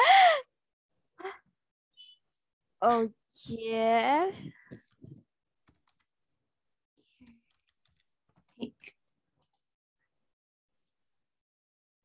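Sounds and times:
keyboard keys clicking: 5.6s - 6.1s.

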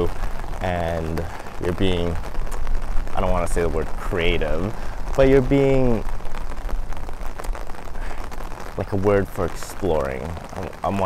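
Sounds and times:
heavy rain on an umbrella: 0.0s - 11.0s.

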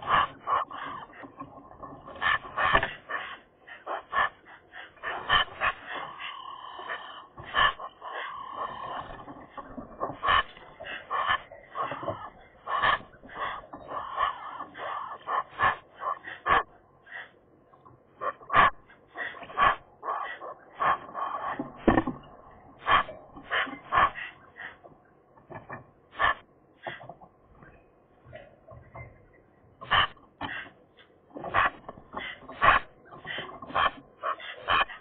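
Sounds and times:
magpies chattering: 0.0s - 35.0s.

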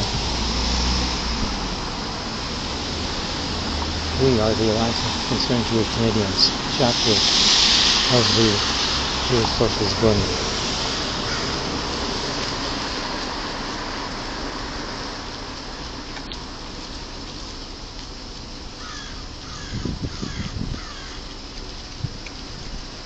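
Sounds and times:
low bumps: 0.0s - 13.0s
passing traffic: 0.0s - 23.0s
harsh bird calls: 18.8s - 21.3s.

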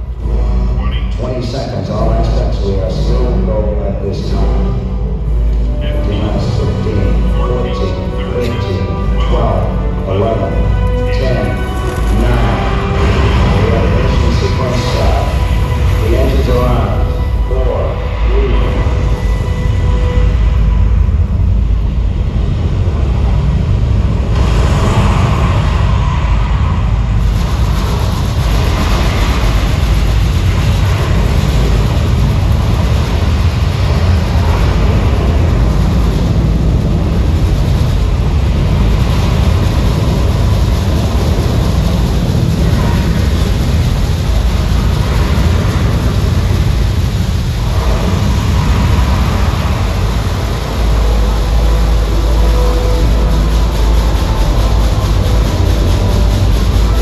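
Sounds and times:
rocket launch roar over loudspeakers: 0.0s - 57.0s.

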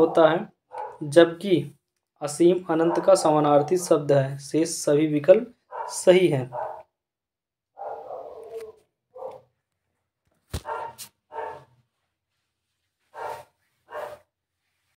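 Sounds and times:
dog barking: 0.0s - 1.0s, 2.8s - 4.0s, 5.7s - 6.9s, 7.8s - 9.5s, 10.6s - 11.8s, 13.1s - 14.3s.

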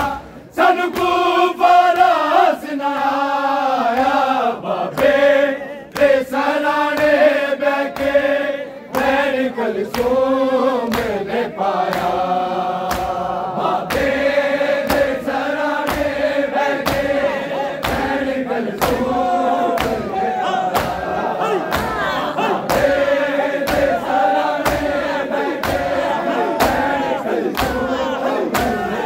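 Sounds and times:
men chanting together: 0.0s - 29.0s
hands slapping chests: 6.9s - 8.2s, 8.9s - 10.2s, 10.8s - 11.2s, 11.8s - 12.2s, 12.8s - 29.0s.

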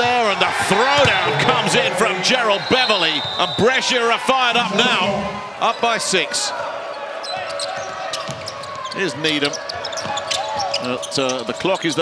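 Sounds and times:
arena crowd noise: 0.0s - 12.0s
sneaker squeaks: 7.2s - 11.4s.

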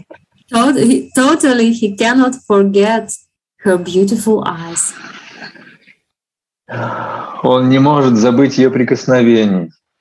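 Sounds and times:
woman's voice over video call: 0.0s - 5.3s
man speaking: 7.3s - 9.8s.

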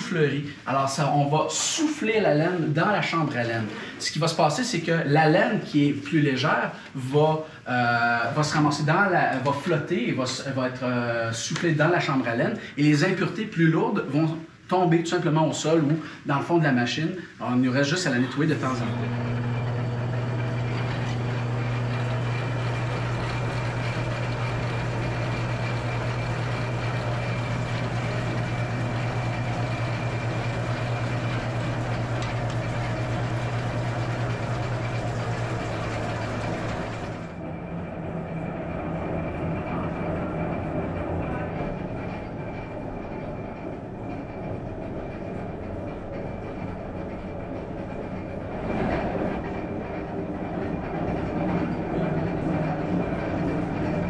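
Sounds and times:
wool picker machine running: 18.4s - 54.0s
machine drone: 18.5s - 54.0s.

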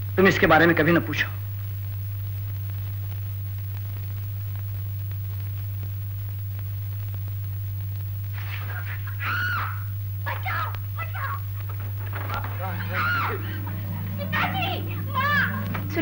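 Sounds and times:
steady low hum: 0.0s - 16.0s
woman crying out: 8.8s - 11.8s, 12.6s - 15.8s.

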